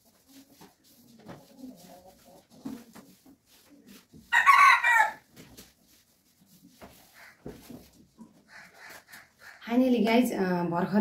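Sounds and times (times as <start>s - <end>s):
rooster crowing: 4.3s - 5.2s.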